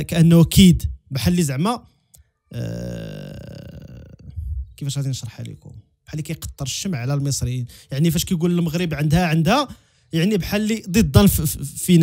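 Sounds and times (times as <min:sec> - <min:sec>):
low throaty voice: 0:02.5 - 0:04.8.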